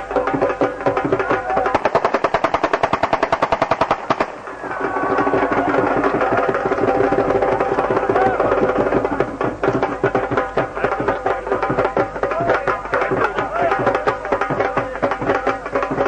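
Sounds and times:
drum-driven festive music: 0:00.0 - 0:16.0
rapid automatic gunfire: 0:01.7 - 0:05.1.

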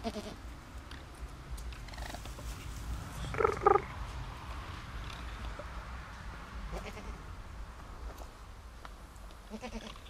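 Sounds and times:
young raccoon calling: 0:03.3 - 0:03.9.

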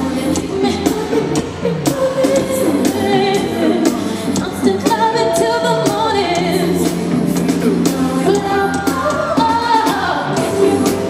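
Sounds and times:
live pop band: 0:00.0 - 0:11.0
woman singing: 0:00.0 - 0:11.0.

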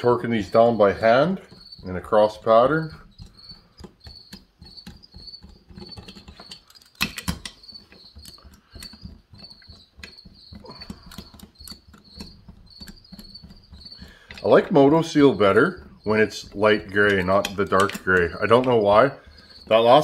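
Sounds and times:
screws being turned by hand: 0:00.0 - 0:20.0.

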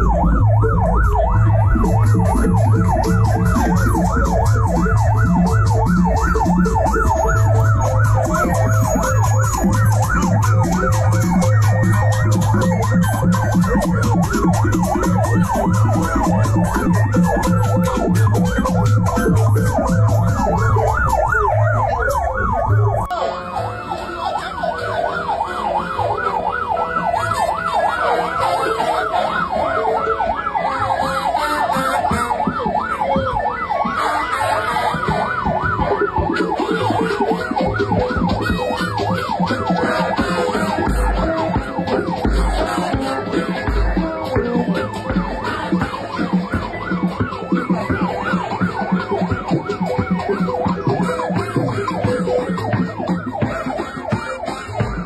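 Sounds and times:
low-pitched siren: 0:00.0 - 0:55.0
vehicle sirens yelping: 0:00.0 - 0:55.0.

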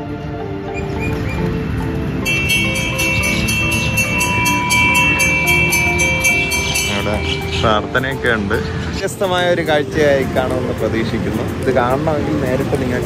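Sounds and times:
background music: 0:00.0 - 0:13.0
brass bell rung rapidly: 0:02.3 - 0:07.8.

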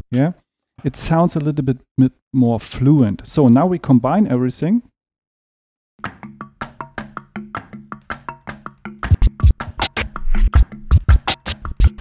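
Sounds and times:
vinyl drum scratching: 0:08.2 - 0:12.0.

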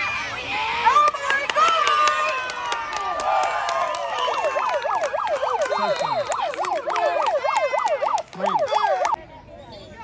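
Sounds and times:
outdoor field ambience: 0:00.0 - 0:10.0
yelping siren: 0:04.1 - 0:09.2.

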